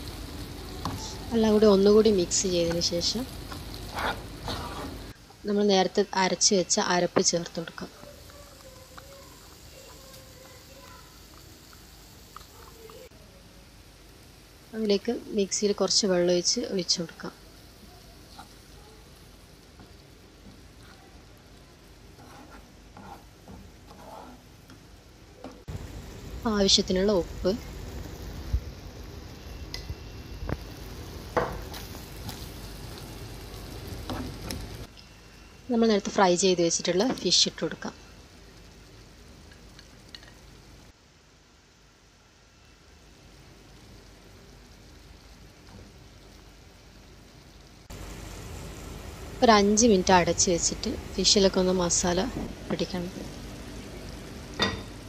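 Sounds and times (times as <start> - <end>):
masala sizzling in a pan: 0.0 - 55.0
spatula stirring in a pan: 0.8 - 5.4, 7.1 - 13.1, 17.6 - 25.7, 31.3 - 34.8.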